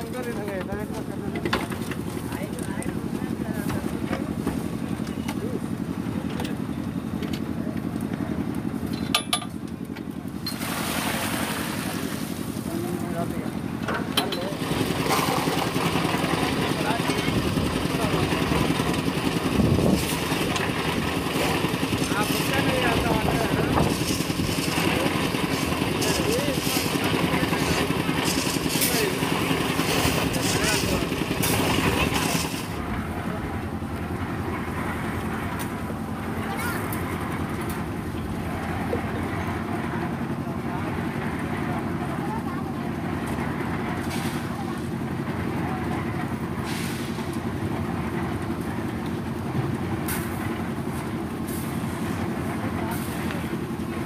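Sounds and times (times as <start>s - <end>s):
people talking: 0.0s - 5.7s, 12.6s - 14.6s, 16.3s - 18.8s, 21.4s - 32.4s, 36.3s - 37.1s, 38.8s - 47.1s, 52.5s - 53.7s
machine engine droning: 0.9s - 54.0s.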